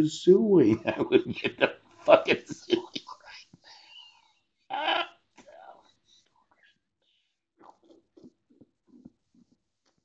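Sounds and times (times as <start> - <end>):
man laughing breathily: 0.7 - 3.0.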